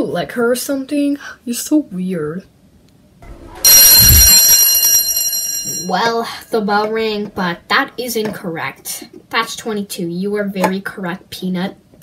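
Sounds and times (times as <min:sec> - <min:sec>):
low thump: 0:03.2 - 0:05.8
school bell ringing: 0:03.2 - 0:06.4.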